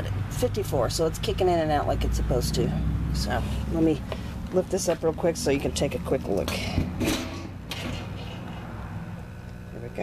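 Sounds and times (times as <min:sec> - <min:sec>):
metal lid scraping: 0:06.4 - 0:08.8.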